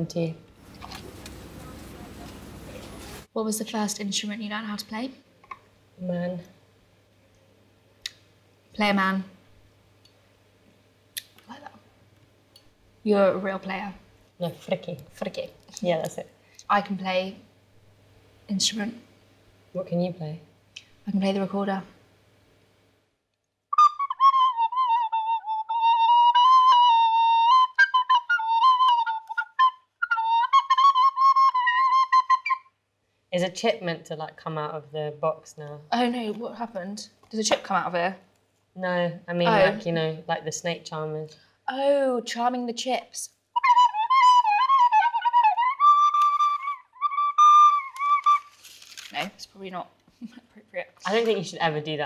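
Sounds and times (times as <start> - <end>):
recorder playing wavering tune: 23.7 - 32.7, 39.5 - 39.8, 43.6 - 48.6.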